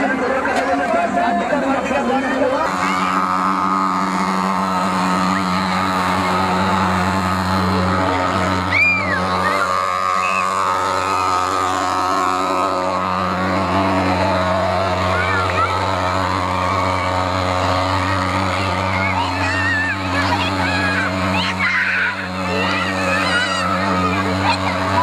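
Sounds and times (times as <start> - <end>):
fogging machine droning: 0.0 - 25.0.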